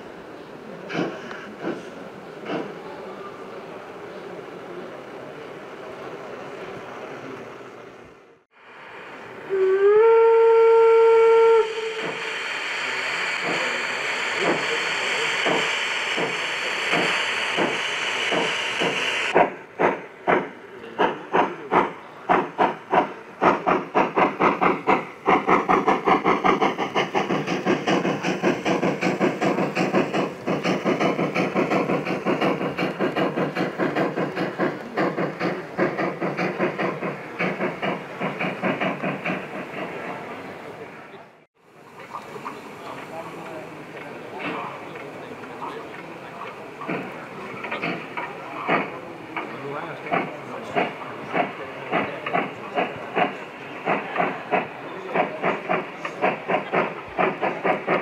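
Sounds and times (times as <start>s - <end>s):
steam hissing: 0.6s - 5.0s, 8.6s - 41.1s, 41.8s - 58.0s
steam locomotive exhaust chuffs: 0.8s - 3.0s, 8.7s - 40.8s, 41.9s - 58.0s
steam locomotive whistle: 9.5s - 13.3s.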